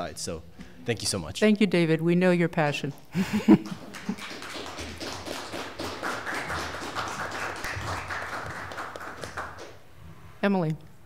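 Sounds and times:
audience applause: 3.6 - 9.8.

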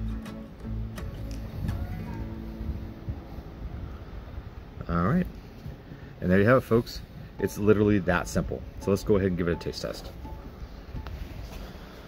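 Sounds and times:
faint background music: 0.0 - 4.1
wind rumble on microphone: 1.1 - 7.4, 10.2 - 12.0.

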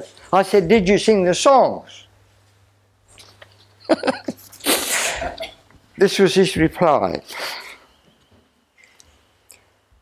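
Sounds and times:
man sneezing: 4.6 - 5.5.

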